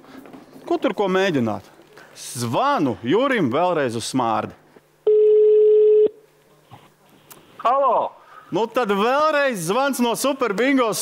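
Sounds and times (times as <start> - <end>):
telephone ringback tone: 5.1 - 6.1.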